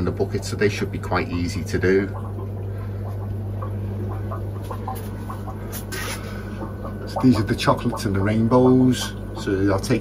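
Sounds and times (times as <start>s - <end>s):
electrical equipment humming: 0.0s - 10.0s.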